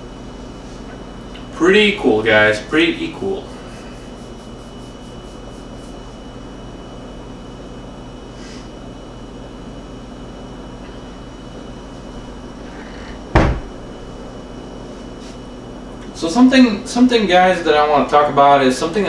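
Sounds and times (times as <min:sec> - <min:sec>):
low electrical hum: 0:00.0 - 0:19.0
sharp thump: 0:13.3 - 0:13.8.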